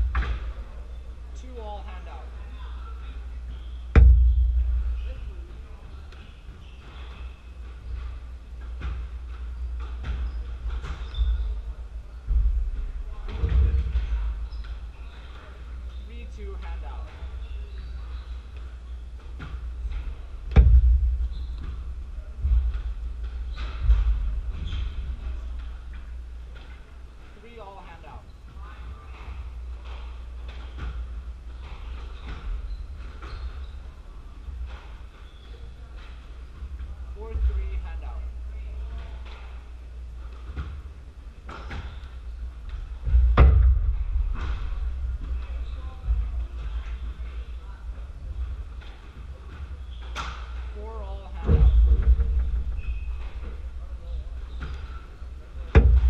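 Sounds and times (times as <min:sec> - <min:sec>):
low rumble in hall: 0:00.0 - 0:56.0
steady low hum: 0:00.0 - 0:56.0
heavy low thuds: 0:03.8 - 0:06.6, 0:07.7 - 0:15.0, 0:19.3 - 0:26.6, 0:42.2 - 0:49.5, 0:51.4 - 0:56.0.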